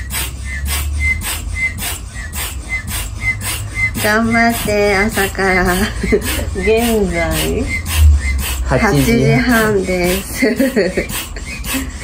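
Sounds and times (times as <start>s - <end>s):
hand bellows pump whooshing: 0.0s - 12.0s.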